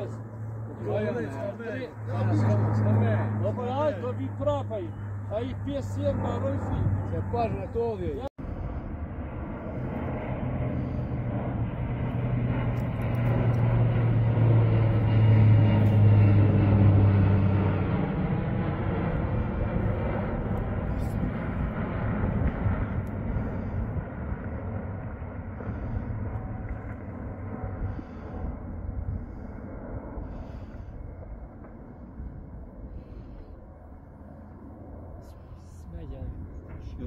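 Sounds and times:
airplane engines droning overhead: 0:00.0 - 0:37.0.

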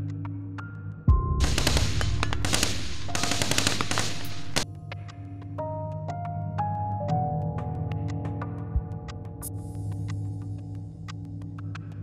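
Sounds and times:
soft music with sustained tones: 0:00.0 - 0:12.0
dense noisy din: 0:01.4 - 0:04.6
rapid gunfire volleys: 0:01.4 - 0:04.6.

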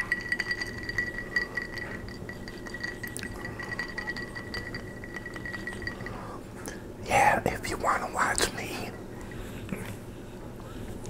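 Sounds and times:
man whispering: 0:07.0 - 0:09.0.

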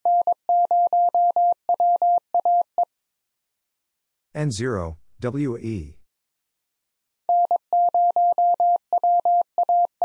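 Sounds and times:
morse code beeps: 0:00.0 - 0:02.9, 0:07.3 - 0:10.0.

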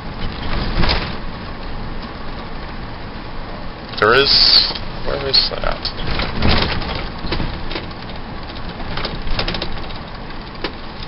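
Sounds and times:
road and engine rumble: 0:00.0 - 0:11.0
body and fittings rattling clicks: 0:04.7 - 0:11.0.

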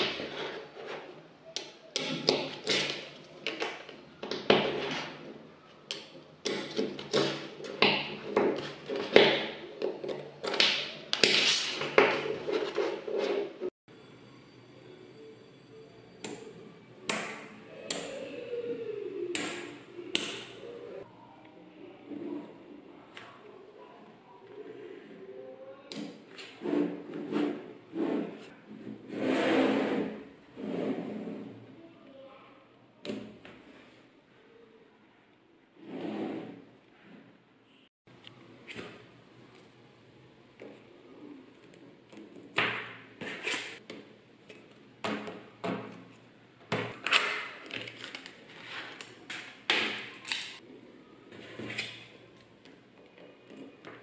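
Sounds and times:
magnetic balls scraping on table: 0:11.2 - 0:13.7, 0:26.4 - 0:31.6, 0:35.8 - 0:36.6.

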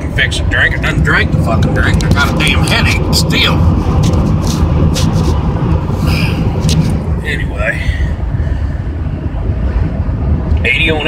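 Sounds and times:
engine and tyres rumbling: 0:00.0 - 0:11.0.

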